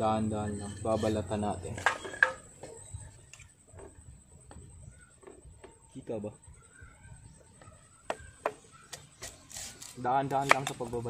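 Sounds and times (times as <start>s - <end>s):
knife scraping bamboo: 8.9s - 11.0s.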